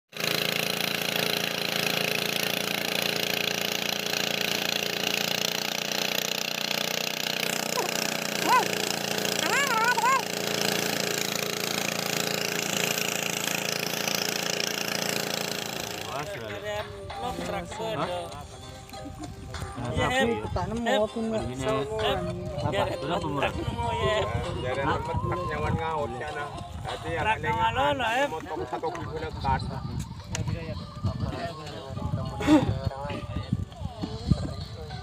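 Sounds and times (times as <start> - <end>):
boat engine running: 0.1 - 35.0
wavering high-pitched calls: 7.5 - 11.7.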